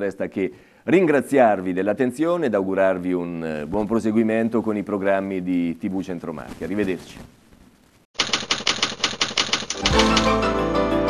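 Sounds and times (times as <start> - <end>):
typewriter key clicks: 8.2 - 10.4
theme music with bass line: 9.9 - 11.0.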